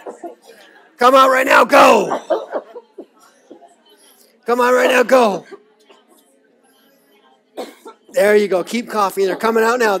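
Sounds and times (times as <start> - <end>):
woman coughing: 7.6 - 8.1.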